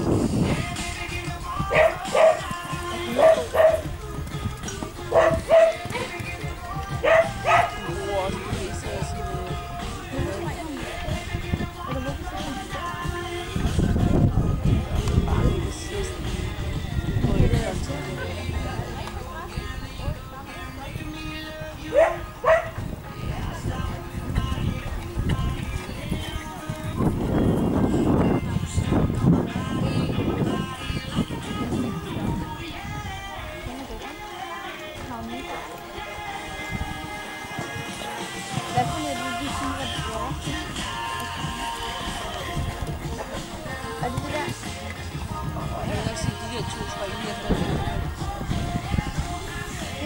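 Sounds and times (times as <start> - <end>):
song with singing voice: 0.0 - 50.0
dog barking: 1.7 - 2.5, 3.1 - 3.9, 5.1 - 6.2, 7.0 - 7.8, 21.9 - 22.8.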